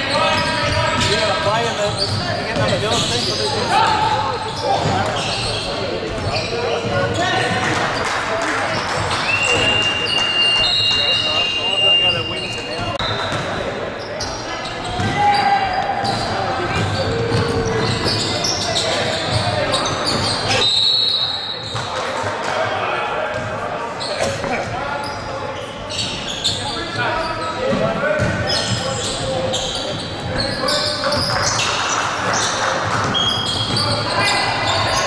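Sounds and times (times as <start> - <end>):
voices echoing in gym hall: 0.0 - 35.0
basketball bouncing on court: 12.9 - 13.6, 14.8 - 15.4, 16.0 - 18.3, 27.8 - 28.7.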